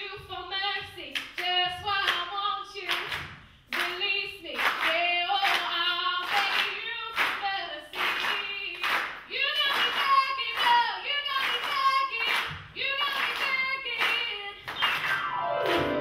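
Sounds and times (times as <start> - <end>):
hand claps: 1.1 - 2.3, 2.9 - 16.0.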